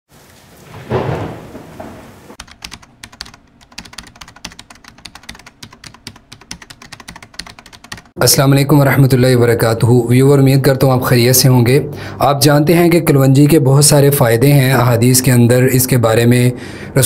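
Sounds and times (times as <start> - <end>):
rapid irregular clicking: 2.4 - 8.2.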